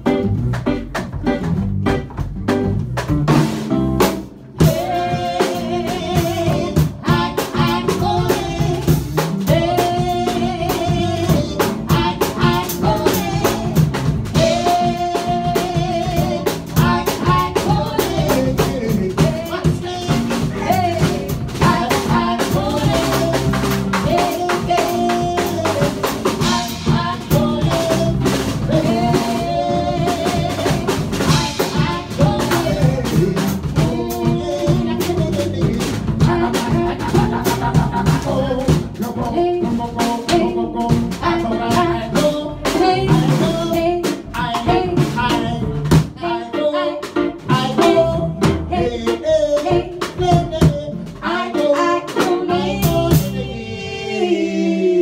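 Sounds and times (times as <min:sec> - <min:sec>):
drum kit with rimshots: 0:00.0 - 0:54.2
live band playing: 0:00.0 - 0:55.0
person singing: 0:04.6 - 0:55.0.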